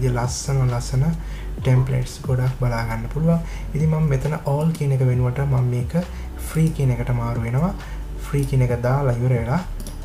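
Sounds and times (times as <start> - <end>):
man speaking: 0.0 - 9.8.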